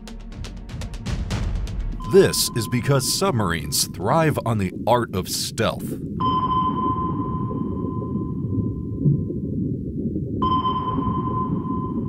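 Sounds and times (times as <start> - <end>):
low underwater rumble: 5.9 - 12.0
sonar pings: 6.2 - 9.0, 10.4 - 12.0.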